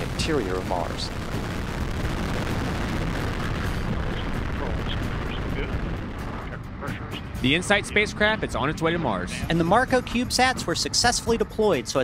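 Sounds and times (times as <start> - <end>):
rocket engine roaring: 0.0 - 10.5.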